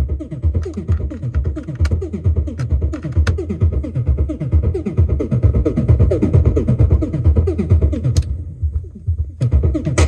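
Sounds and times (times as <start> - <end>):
synthesizer techno bass pattern: 0.0 - 10.0.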